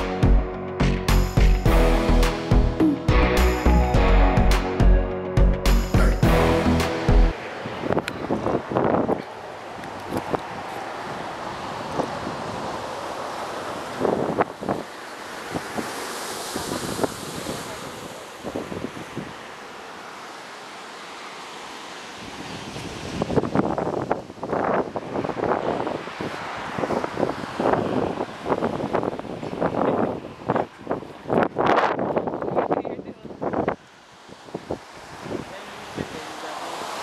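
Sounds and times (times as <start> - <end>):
ocean surf rushing: 0.0 - 31.1, 33.3 - 37.0
wind buffeting microphone: 7.3 - 19.5, 22.2 - 36.3.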